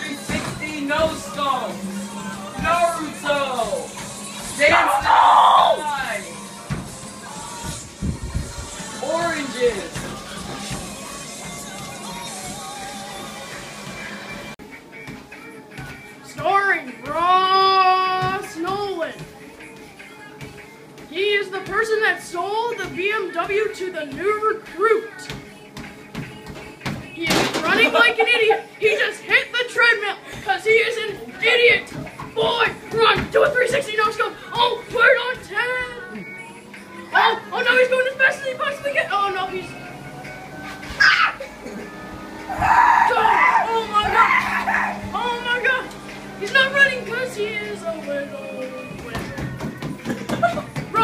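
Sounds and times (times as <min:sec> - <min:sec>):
background music: 0:00.0 - 0:51.0
young people shrieking and laughing: 0:41.0 - 0:41.9, 0:42.5 - 0:45.0.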